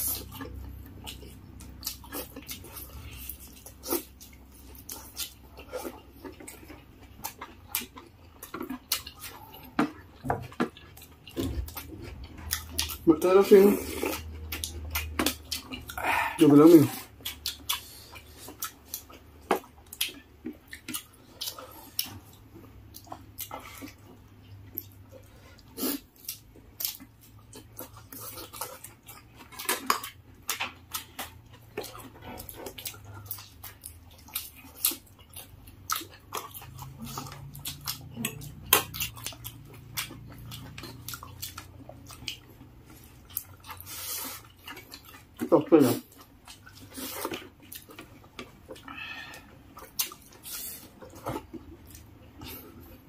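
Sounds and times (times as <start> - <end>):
chewing and lip-smacking: 0.0 - 53.0.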